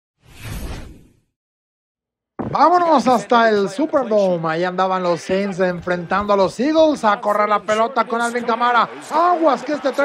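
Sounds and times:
whoosh sound effect: 0:00.2 - 0:01.3.

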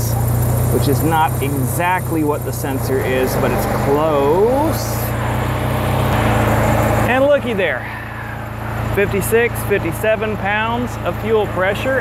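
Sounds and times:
rotary engine idling: 0:00.0 - 0:12.0.

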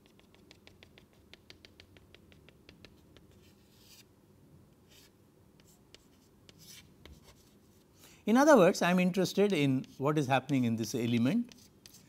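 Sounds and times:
chalk tapping on chalkboard: 0:00.0 - 0:04.0, 0:04.9 - 0:07.6, 0:09.4 - 0:12.0
chalk scratching strokes: 0:00.0 - 0:04.1, 0:04.8 - 0:07.9, 0:11.4 - 0:12.0.

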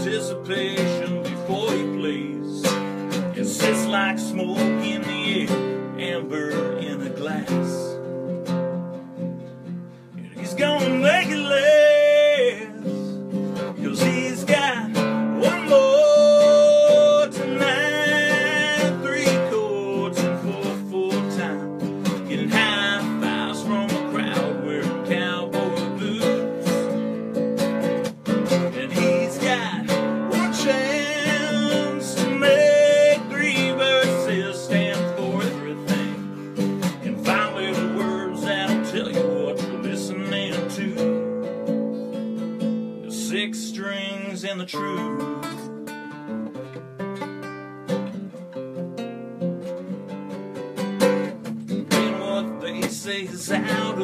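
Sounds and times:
man singing: 0:00.0 - 0:08.2, 0:10.1 - 0:27.1, 0:28.2 - 0:41.7, 0:43.0 - 0:45.8, 0:51.7 - 0:54.0
strummed acoustic guitar: 0:00.0 - 0:54.0.

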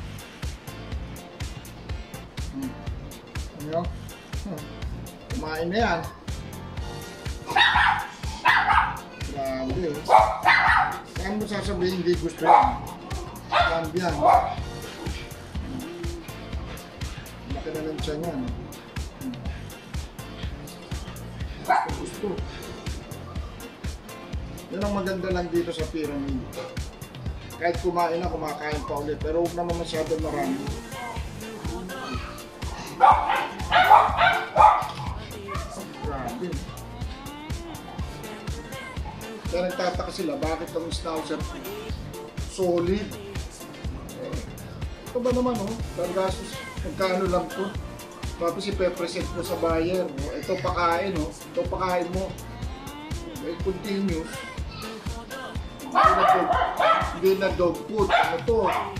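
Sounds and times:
background music: 0:00.0 - 0:58.9
dog barking: 0:07.4 - 0:09.2, 0:10.0 - 0:11.2, 0:12.3 - 0:14.9, 0:21.6 - 0:22.2, 0:31.9 - 0:36.2, 0:55.8 - 0:57.3, 0:58.0 - 0:58.9.

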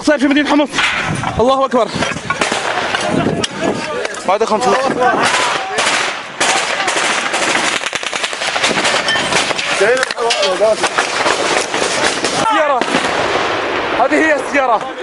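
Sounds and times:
men shouting: 0:02.6 - 0:07.3
automatic gunfire: 0:05.2 - 0:10.0, 0:10.7 - 0:13.5.

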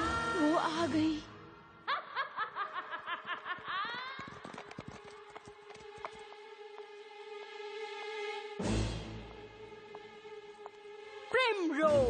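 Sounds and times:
high-pitched cackling laugh: 0:01.9 - 0:04.2.

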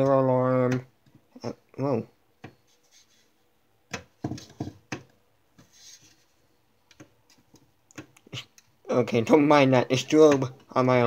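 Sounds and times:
soft rub: 0:02.6 - 0:03.6, 0:05.6 - 0:06.6
plastic clicks and knocks: 0:03.9 - 0:05.2.

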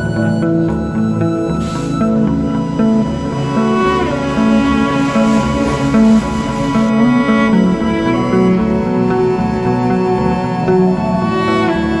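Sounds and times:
slow instrumental melody: 0:00.0 - 0:12.0.

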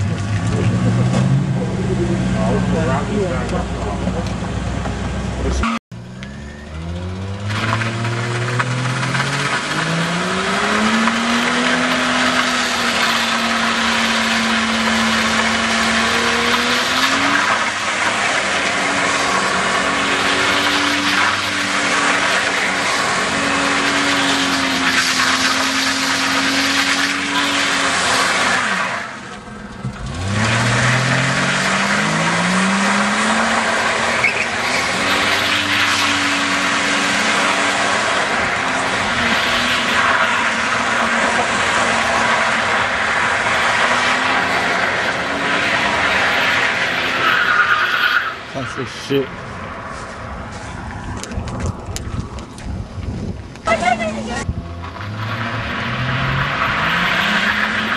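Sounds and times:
car engine revving high: 0:00.0 - 0:49.3, 0:53.6 - 0:57.9
tyres spinning and squealing: 0:00.0 - 0:57.9.

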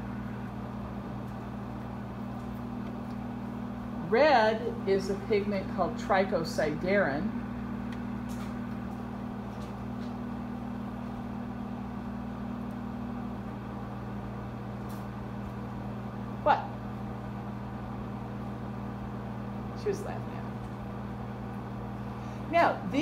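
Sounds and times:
projector cooling fan hum: 0:00.0 - 0:23.0.

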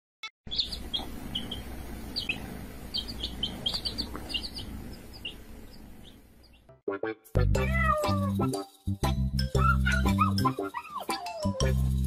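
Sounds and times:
baby chicks peeping: 0:00.5 - 0:06.7
low background noise: 0:00.5 - 0:06.7.

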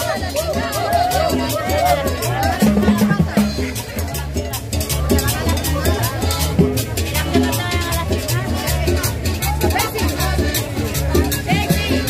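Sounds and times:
accordion: 0:00.0 - 0:12.0
high percussion strokes: 0:00.0 - 0:12.0
upright bass: 0:00.0 - 0:12.0.

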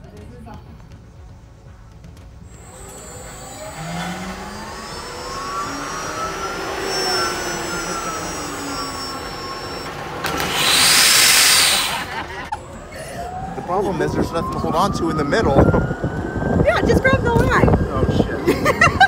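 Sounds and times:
zipline trolley whirring: 0:02.4 - 0:14.4
loud rushing hiss: 0:02.5 - 0:12.5.

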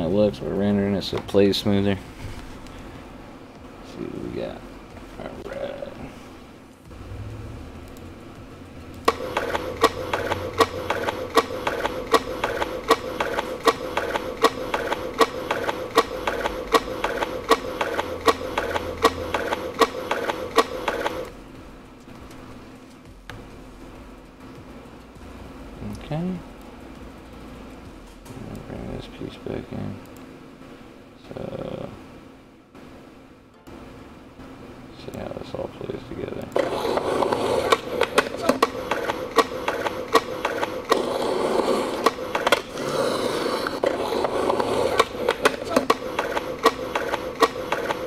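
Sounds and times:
steady hum: 0:00.0 - 0:48.0
sharp clicks: 0:08.9 - 0:21.3, 0:44.5 - 0:48.0.

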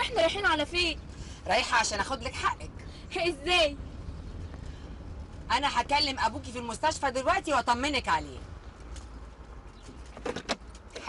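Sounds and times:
car driving rumble: 0:00.0 - 0:11.0.

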